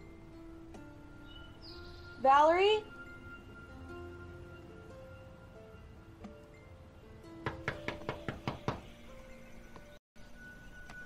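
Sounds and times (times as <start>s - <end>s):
soft background music: 0.0s - 11.0s
knocking on front door: 7.4s - 8.9s.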